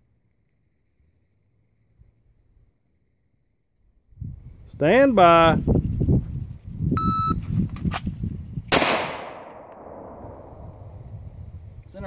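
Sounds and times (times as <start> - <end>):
shot timer beep: 7.0 - 7.4
pistol shot with echo: 8.7 - 10.8.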